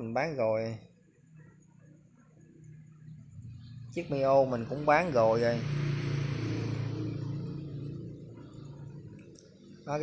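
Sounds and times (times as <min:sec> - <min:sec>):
low engine-like hum: 0:01.3 - 0:10.0.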